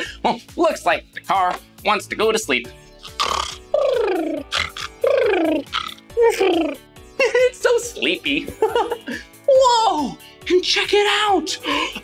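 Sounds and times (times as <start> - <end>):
cartoon snoring: 3.0 - 6.8.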